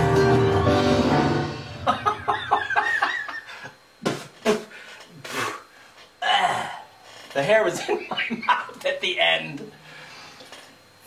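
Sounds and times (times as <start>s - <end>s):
man laughing: 1.8s - 3.7s, 7.6s - 8.8s.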